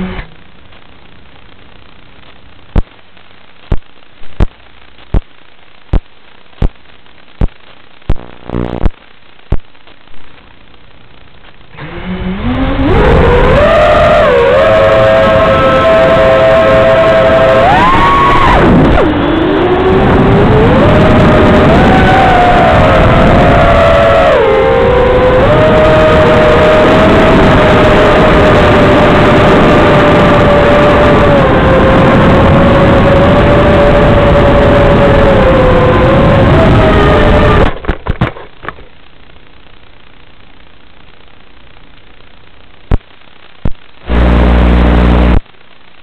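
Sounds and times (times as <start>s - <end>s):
electric motors whining: 44.1s - 45.4s.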